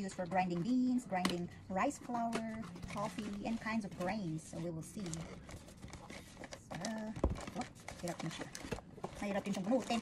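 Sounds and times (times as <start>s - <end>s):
cardboard rustling and scraping: 2.2s - 10.0s.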